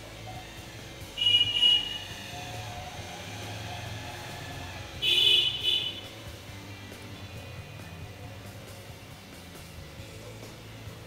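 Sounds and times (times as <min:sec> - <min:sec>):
faint background music: 0:00.0 - 0:11.0
vehicle horn honking: 0:01.2 - 0:02.2, 0:05.0 - 0:06.2.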